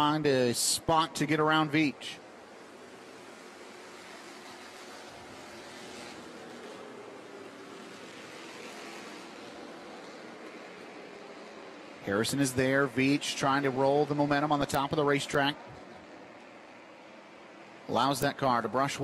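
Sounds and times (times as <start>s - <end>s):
distant race cars: 0.0s - 19.0s.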